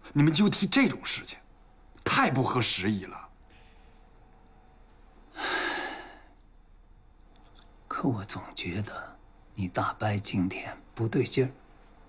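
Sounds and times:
man speaking: 0.1s - 1.4s, 2.0s - 3.4s, 7.9s - 11.6s
man breathing: 5.3s - 6.4s.

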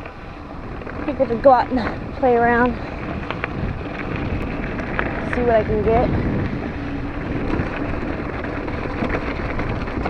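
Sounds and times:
bike rattle ticks: 0.0s - 10.0s
bike rolling over gravel: 0.0s - 10.0s
wind buffeting microphone: 0.0s - 10.0s.

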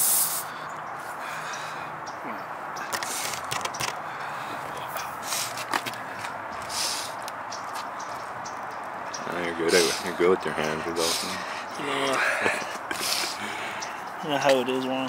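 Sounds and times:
air hissing from tire: 0.0s - 0.6s, 6.7s - 7.2s, 11.0s - 11.4s.

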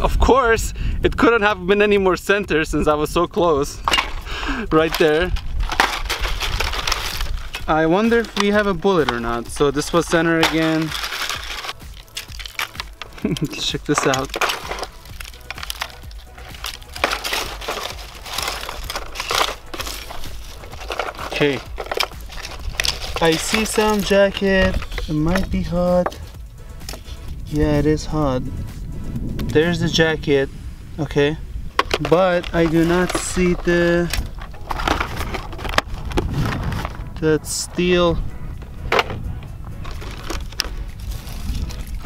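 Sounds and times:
low rumble: 3.6s - 42.0s
broken plastic crunching and clattering: 3.8s - 26.2s, 31.8s - 37.0s, 39.8s - 42.0s
plastic fragments clicking: 3.8s - 26.3s
cardboard rustling: 3.9s - 27.2s, 31.8s - 37.2s, 38.6s - 42.0s
packaging crinkling: 4.7s - 26.2s, 32.0s - 37.1s, 39.8s - 42.0s.

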